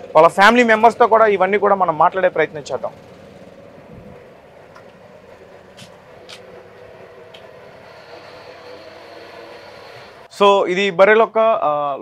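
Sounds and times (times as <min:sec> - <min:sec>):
thin high whine: 0:03.1 - 0:10.6.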